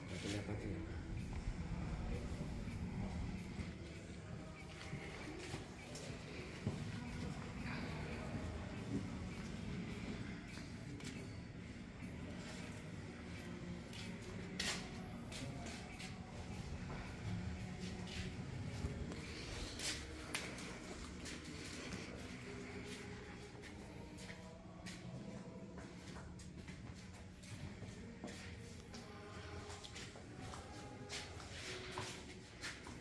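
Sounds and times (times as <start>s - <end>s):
murmur of voices or music: 0.0s - 33.0s.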